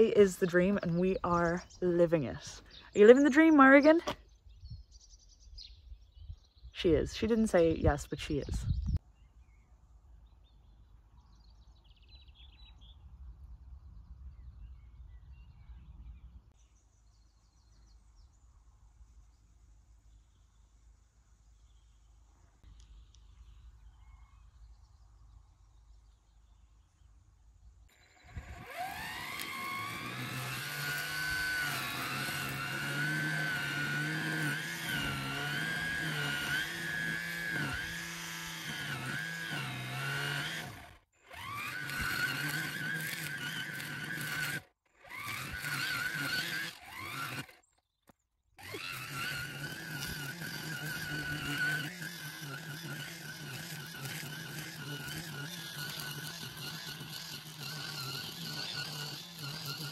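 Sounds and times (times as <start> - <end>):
brush cutter whining: 0.0 - 4.4, 6.8 - 8.7, 27.9 - 59.9.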